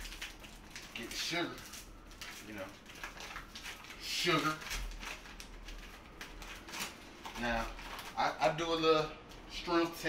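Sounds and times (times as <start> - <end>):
paper bag crinkling: 0.0 - 8.4.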